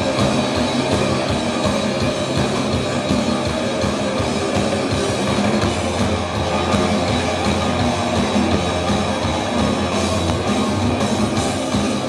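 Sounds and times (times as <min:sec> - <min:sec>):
rock band playing live: 0:00.0 - 0:12.0.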